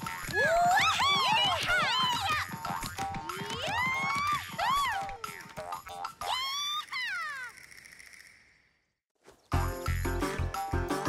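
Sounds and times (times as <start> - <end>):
light cartoon music: 0.0 - 7.6, 9.5 - 11.0.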